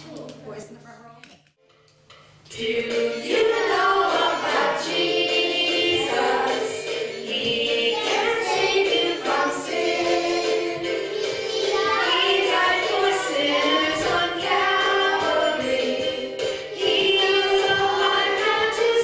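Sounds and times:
woman and children singing: 0:02.5 - 0:19.0.

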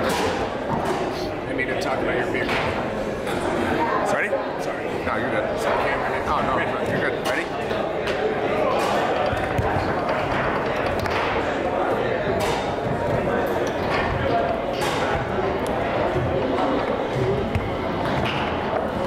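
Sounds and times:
murmur of talk: 0:00.0 - 0:19.0.

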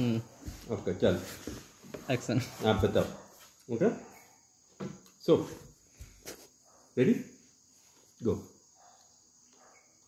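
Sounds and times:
insect chirring: 0:03.5 - 0:10.0.

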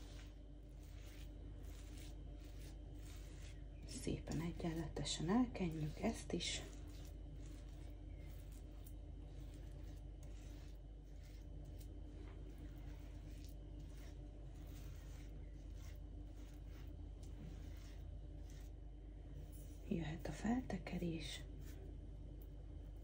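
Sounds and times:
spatula scraping filling on dough: 0:00.0 - 0:22.0
steady low hum: 0:00.0 - 0:23.0.

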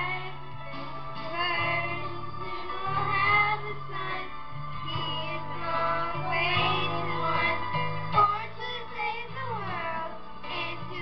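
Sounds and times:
girls singing into a microphone: 0:00.0 - 0:00.5, 0:01.2 - 0:11.0
instrumental accompaniment: 0:00.0 - 0:11.0.

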